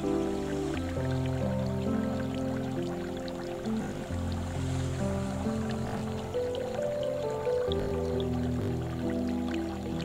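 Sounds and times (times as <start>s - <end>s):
slow soft piano music: 0.0s - 10.0s
water trickling into a basin: 0.0s - 10.0s.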